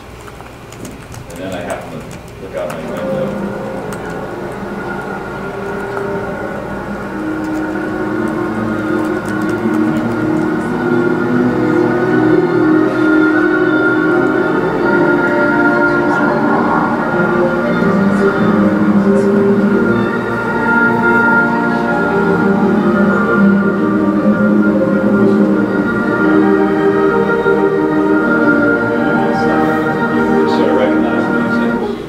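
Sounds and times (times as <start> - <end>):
classical music playing: 1.3 - 32.0.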